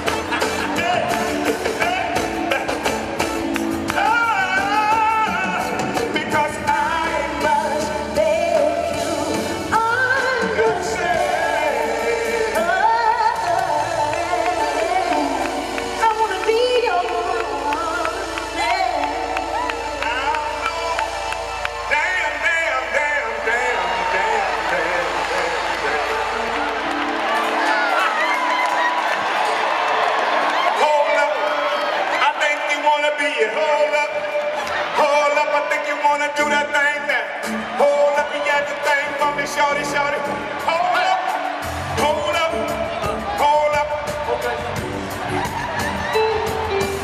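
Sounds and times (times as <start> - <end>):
live band playing r and b: 0.0 - 47.0.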